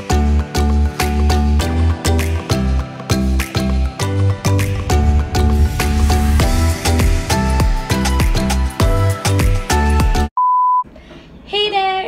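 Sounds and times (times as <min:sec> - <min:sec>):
music: 0:00.0 - 0:10.3.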